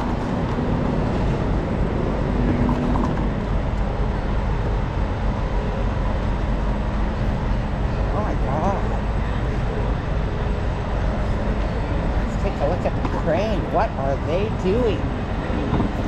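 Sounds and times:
city street traffic rumble: 0.0s - 16.0s
low steady hum: 0.0s - 16.0s.

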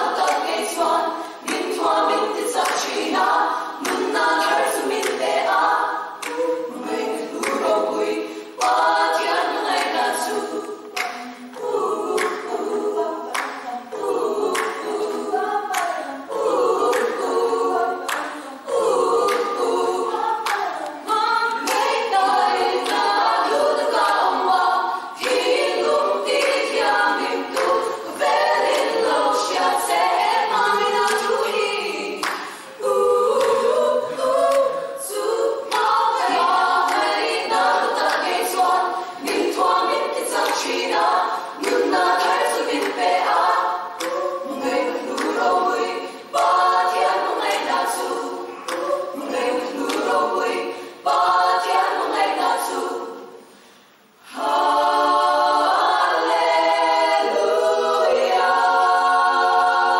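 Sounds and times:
women's choir singing: 0.0s - 59.9s.

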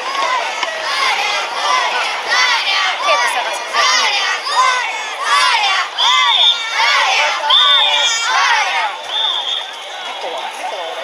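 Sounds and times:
people chanting rhythmic shouts: 0.0s - 11.0s
shrill whistle: 6.0s - 6.8s, 7.5s - 8.2s, 9.0s - 10.3s.

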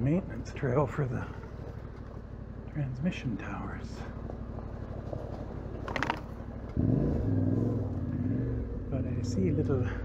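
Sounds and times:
motorcycle engine revving: 3.8s - 10.0s.

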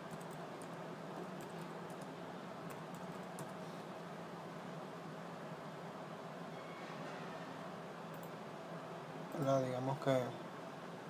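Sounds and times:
faint keyboard typing: 0.0s - 3.6s, 8.1s - 8.4s
steady low hum and hiss: 0.0s - 11.0s.

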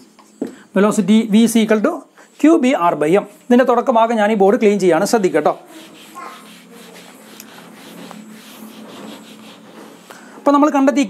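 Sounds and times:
eraser rubbing on whiteboard: 5.5s - 10.1s.

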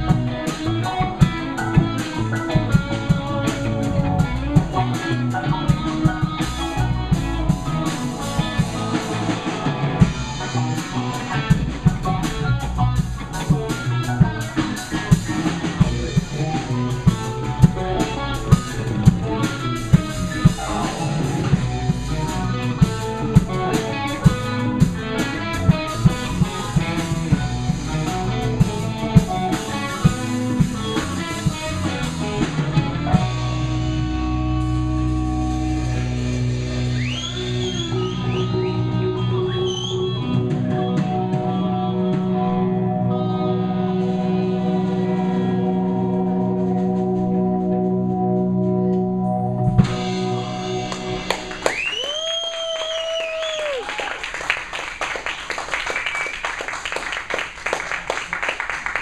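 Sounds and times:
live rock band playing: 0.0s - 59.0s
drum hits: 49.8s - 52.2s.

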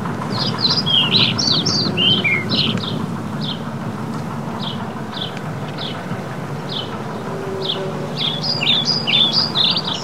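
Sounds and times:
low background rumble: 0.0s - 10.0s
songbird chirping: 0.3s - 3.7s, 4.5s - 10.0s.

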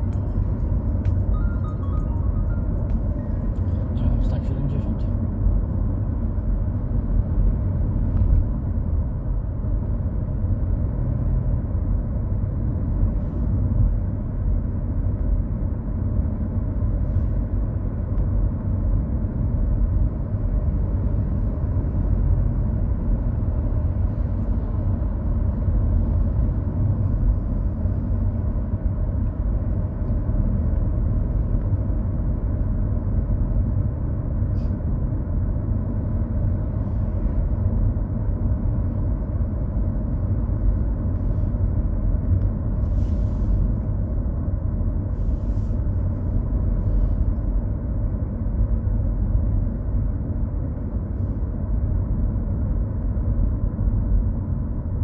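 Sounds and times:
car interior road rumble: 0.0s - 55.0s.

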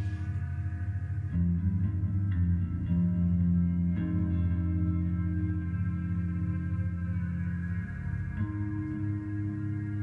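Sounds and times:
band droning low chord: 0.0s - 10.0s.

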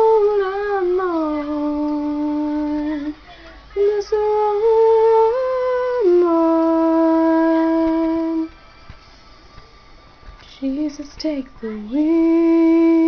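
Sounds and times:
woman singing wordless notes: 0.0s - 8.5s, 10.4s - 13.0s.

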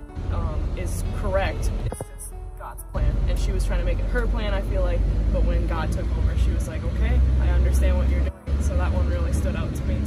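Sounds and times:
van engine rumbling: 0.0s - 10.0s.

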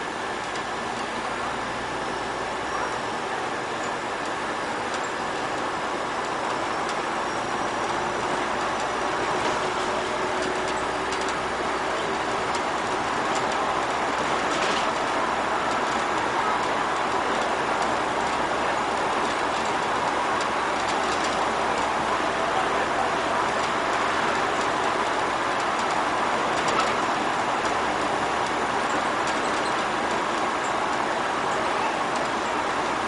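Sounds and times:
bus engine and tyres running: 0.0s - 33.0s.

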